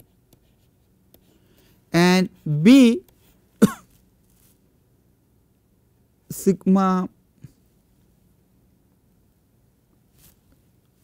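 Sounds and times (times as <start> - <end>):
stylus tapping and scratching: 0.0 - 3.4.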